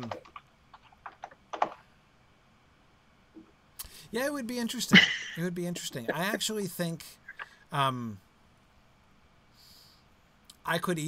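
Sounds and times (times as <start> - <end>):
typing on computer keyboard: 0.0 - 1.8.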